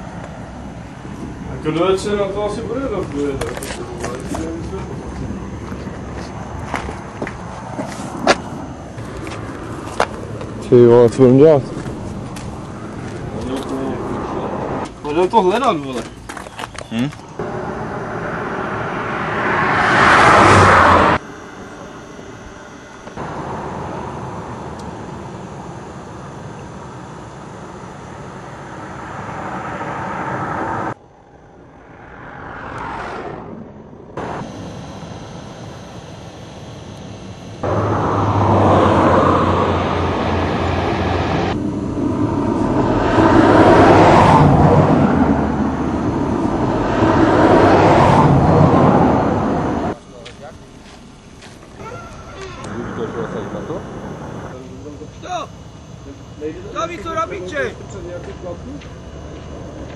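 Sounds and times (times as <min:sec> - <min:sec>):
loud steady road rumbling: 0:00.0 - 0:59.9
vehicles passing: 0:00.0 - 0:59.9.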